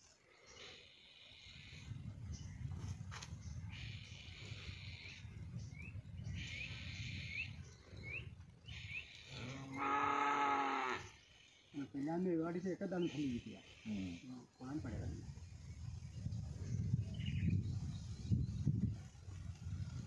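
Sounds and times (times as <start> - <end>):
cow mooing: 9.3 - 11.2.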